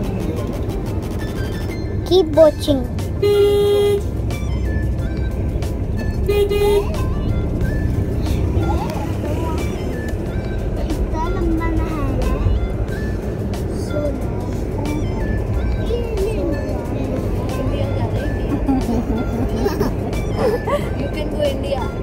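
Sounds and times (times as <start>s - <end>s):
car road and engine rumble: 0.0s - 22.0s
music playing: 0.0s - 22.0s
voices: 6.2s - 22.0s.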